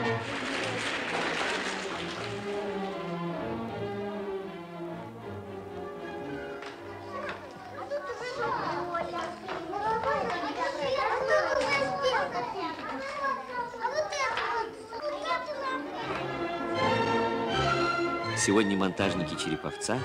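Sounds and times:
faint orchestral music: 0:00.0 - 0:09.1, 0:15.8 - 0:20.0
children chattering and calling out: 0:05.3 - 0:17.6.

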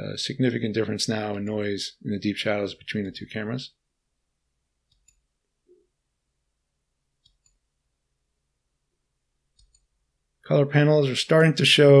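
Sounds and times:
faint computer mouse clicks: 0:04.9 - 0:05.2, 0:07.2 - 0:07.6, 0:09.6 - 0:09.9.

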